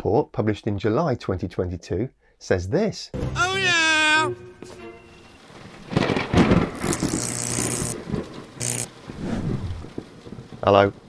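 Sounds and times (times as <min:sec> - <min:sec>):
thunder-like rumbling: 0:05.4 - 0:07.0, 0:08.0 - 0:11.0
electric crackle: 0:05.4 - 0:11.0.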